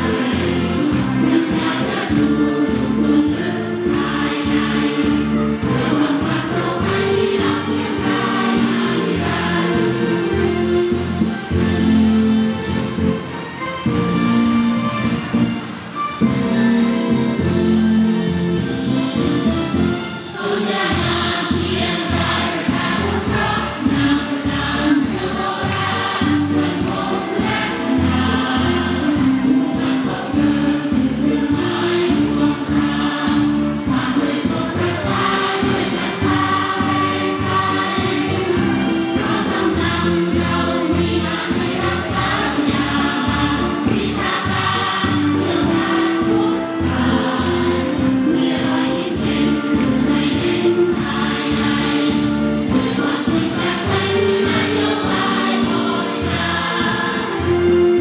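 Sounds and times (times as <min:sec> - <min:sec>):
choir singing a march song: 0:00.0 - 0:58.0
music with steady beat: 0:00.0 - 0:58.0.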